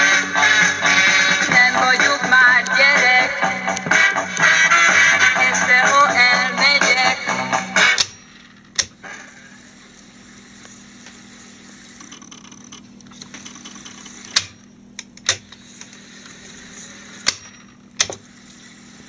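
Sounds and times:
tape recorder motor hum: 0.0 - 19.0.

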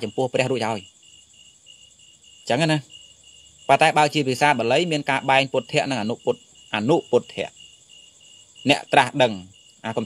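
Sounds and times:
man preaching: 0.0 - 0.9, 2.5 - 2.9, 3.7 - 7.6, 8.6 - 10.0
insects chirring: 0.0 - 10.0.

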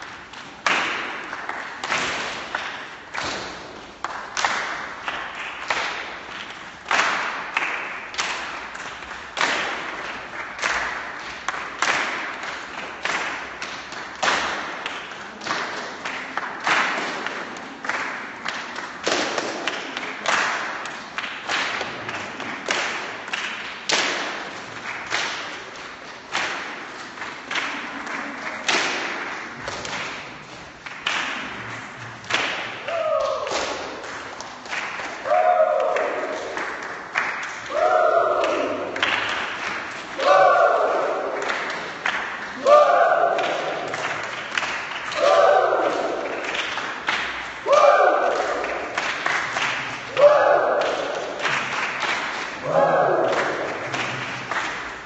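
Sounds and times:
group clapping in rhythm: 0.0 - 55.0.

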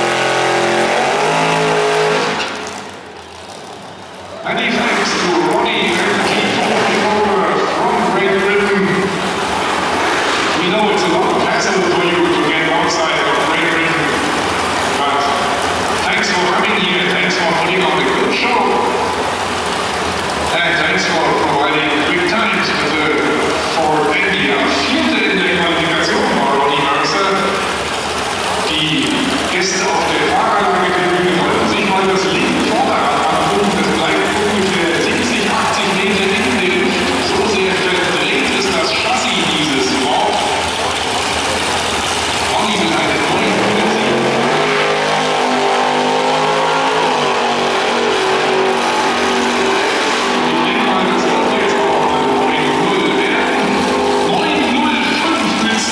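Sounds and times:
announcer over public address: 0.0 - 2.4, 4.4 - 9.2, 10.5 - 19.2, 20.5 - 27.8, 28.6 - 55.9
car engine idling: 0.0 - 55.9.

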